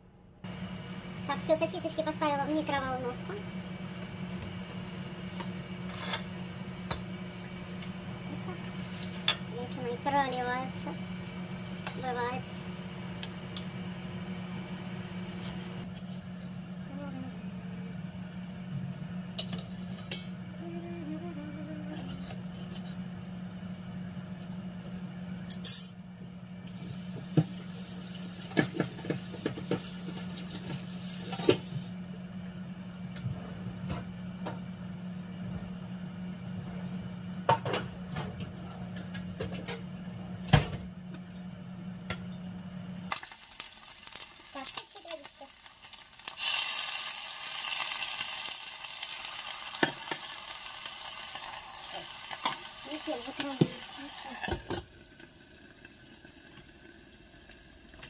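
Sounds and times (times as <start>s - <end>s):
microwave oven humming: 0.0s - 58.0s.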